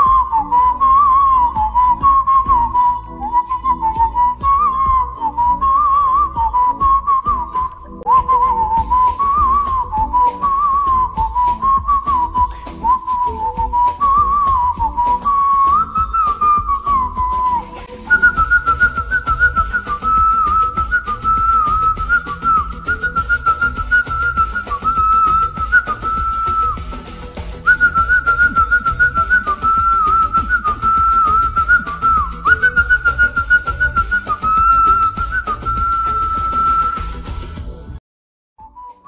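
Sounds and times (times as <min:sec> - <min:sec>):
instrumental backing track: 0:00.0 - 0:38.0
person whistling a melody: 0:00.0 - 0:38.0, 0:38.6 - 0:39.0.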